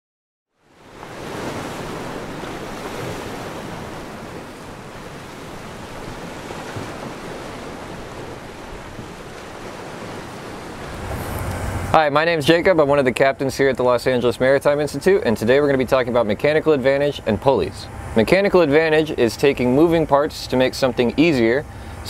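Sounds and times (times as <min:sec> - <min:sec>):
ocean surf washing: 0:00.6 - 0:22.0.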